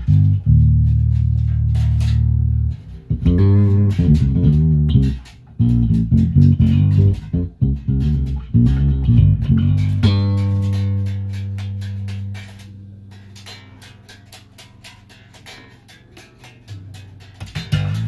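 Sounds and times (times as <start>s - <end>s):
electric bass plucked notes: 0.0s - 13.7s, 16.8s - 18.0s.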